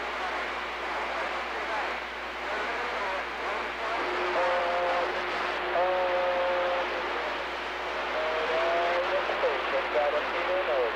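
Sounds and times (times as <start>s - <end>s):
garbled distant radio transmissions: 0.0s - 10.9s
radio receiver hiss: 0.0s - 10.9s.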